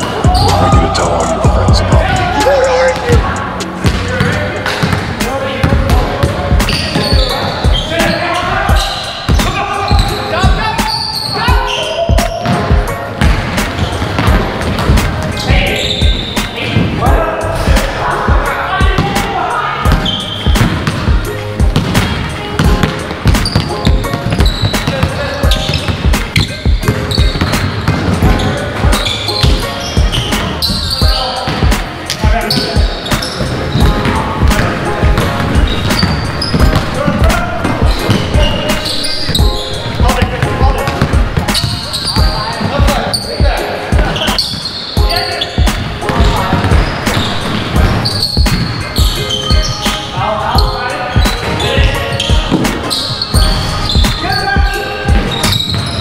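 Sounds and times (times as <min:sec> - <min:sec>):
players shouting: 0:00.0 - 0:04.6
sneakers squeaking: 0:00.0 - 0:18.0, 0:18.7 - 0:56.0.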